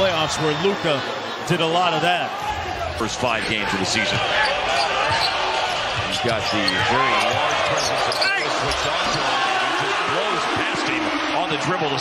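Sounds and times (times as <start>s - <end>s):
arena crowd: 0.0s - 12.0s.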